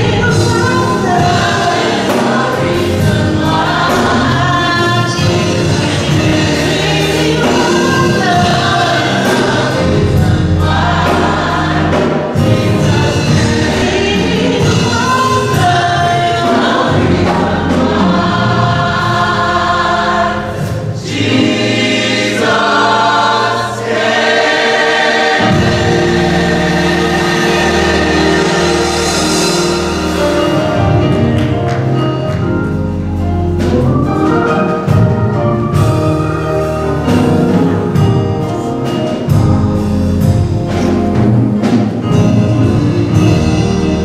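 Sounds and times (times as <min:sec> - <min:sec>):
gospel choir singing: 0:00.0 - 0:44.0.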